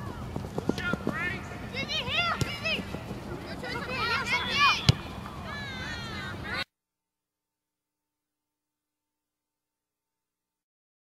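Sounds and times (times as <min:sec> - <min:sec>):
distant players shouting: 0:00.0 - 0:06.7.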